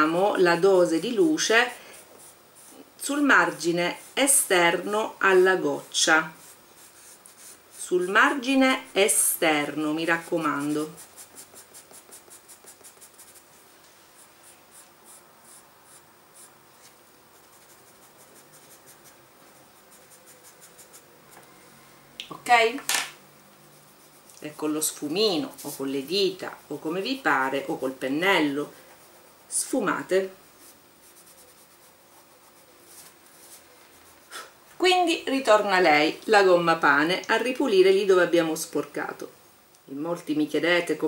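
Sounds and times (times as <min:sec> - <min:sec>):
pencil scratching on paper: 0:00.0 - 0:13.6, 0:14.2 - 0:21.2, 0:23.7 - 0:34.3.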